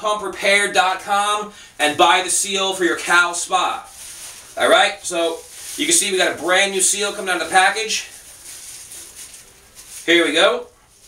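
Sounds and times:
plastic bag crinkling: 2.2s - 11.0s.

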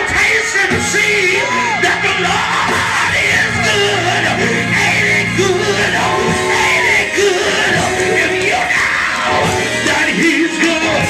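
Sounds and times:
held keyboard chords: 0.0s - 11.0s.

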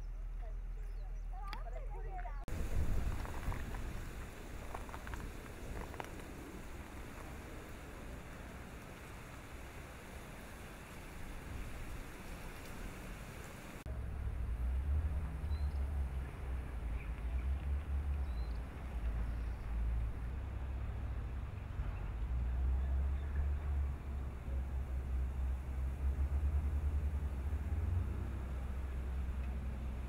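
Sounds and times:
faint hiss: 2.5s - 13.8s.

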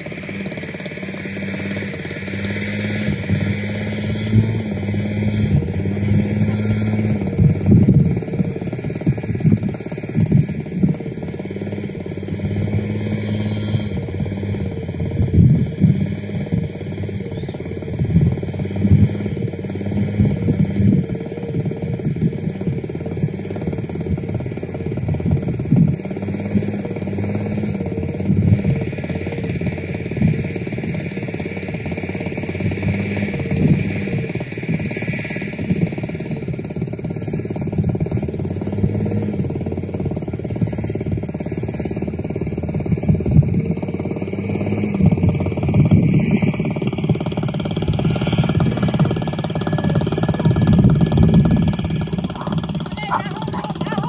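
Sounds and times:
small engine running: 0.0s - 54.0s
wind buffeting microphone: 4.3s - 11.8s, 42.6s - 53.9s.

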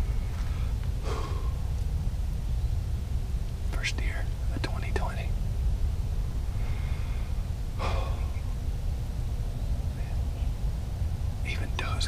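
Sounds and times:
steady low rumble: 0.0s - 12.0s
person whispering: 3.7s - 5.3s, 11.5s - 12.0s.

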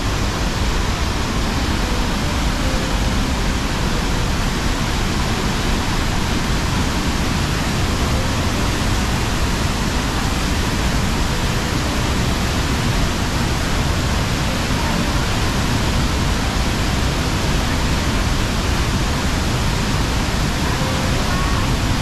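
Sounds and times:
waterfall rushing: 0.0s - 22.0s.

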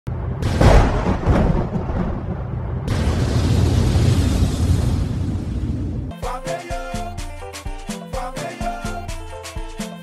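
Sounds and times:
heavy hits: 0.3s - 6.1s.

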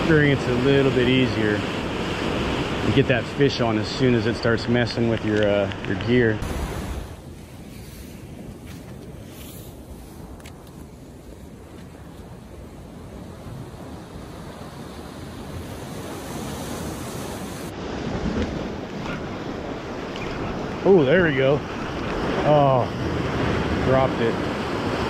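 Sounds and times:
surf breaking over rocks: 0.0s - 10.6s, 11.5s - 25.0s.

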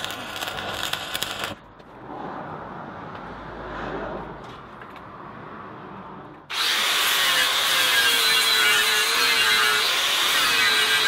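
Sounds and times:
angle grinder grinding metal: 6.5s - 11.0s.

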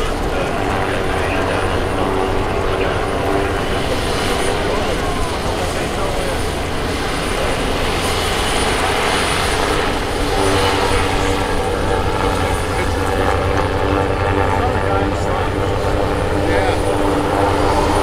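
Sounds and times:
airship engines and propellers droning: 0.0s - 18.0s.

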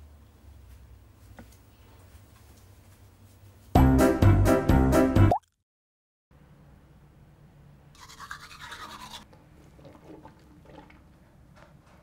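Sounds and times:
toothbrush scrubbing teeth: 8.0s - 11.0s.

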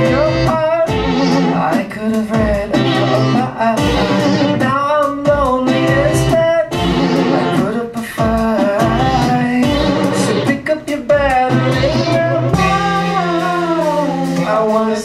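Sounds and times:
drums: 0.0s - 15.0s
electric guitar: 0.0s - 15.0s
keyboards: 0.0s - 15.0s
man singing: 0.0s - 15.0s.

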